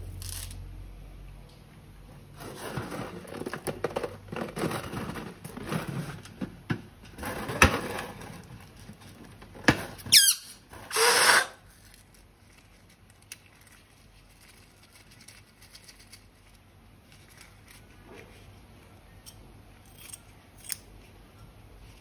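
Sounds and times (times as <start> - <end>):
balloon rubber squeaking: 10.0 - 11.6
air escaping from balloon: 10.1 - 11.6
balloon neck squealing: 10.1 - 11.6.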